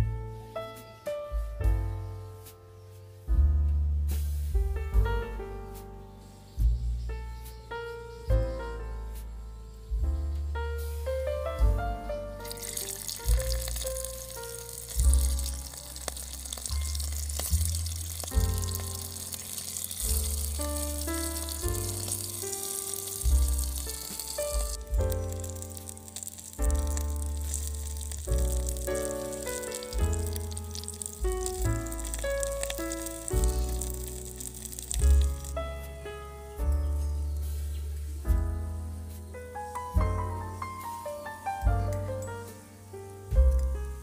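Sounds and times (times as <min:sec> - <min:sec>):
instrumental music with pulsing bass: 0:00.0 - 0:44.0
fish sizzling in hot oil: 0:12.4 - 0:35.9.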